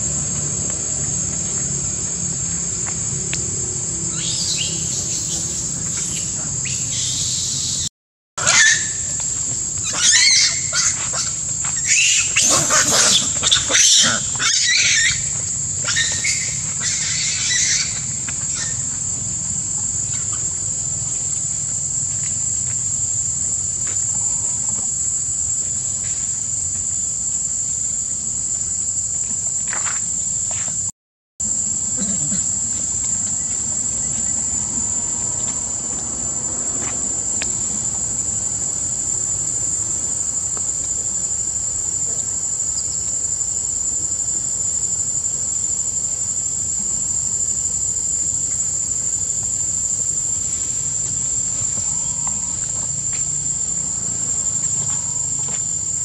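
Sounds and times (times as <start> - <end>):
high-pitched insect drone: 0.0 - 56.0
macaques screaming: 4.1 - 7.8, 8.4 - 9.2, 9.8 - 18.9.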